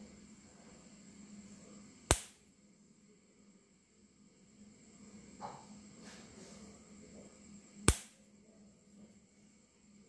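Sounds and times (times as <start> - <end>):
faint electrical hum: 0.0 - 10.0
sharp electric spark snap: 2.1 - 2.5, 7.8 - 8.2.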